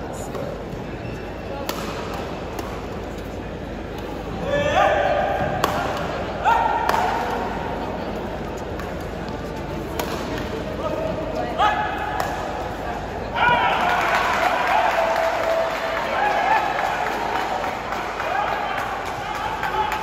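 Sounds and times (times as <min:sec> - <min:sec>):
shoes squeaking on court floor: 0:00.8 - 0:01.6
rackets striking shuttlecock: 0:01.6 - 0:03.2, 0:05.4 - 0:06.2, 0:06.8 - 0:07.5, 0:08.7 - 0:10.6.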